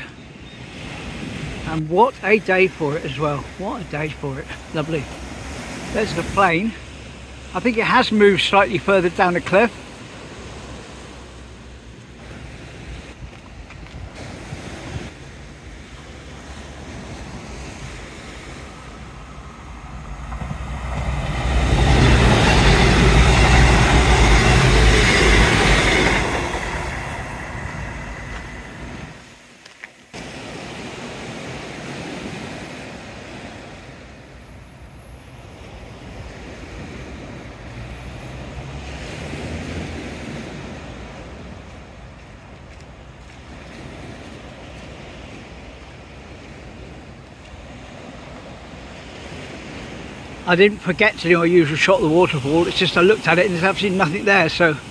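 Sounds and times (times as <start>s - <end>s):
diesel train passing: 0.0s - 29.7s, 33.2s - 54.9s
waves breaking on beach: 0.0s - 54.9s.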